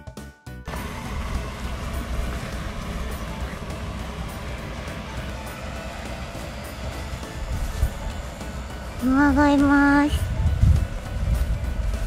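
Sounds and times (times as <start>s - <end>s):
faint background music: 0.0s - 12.0s
wind buffeting microphone: 7.2s - 12.0s.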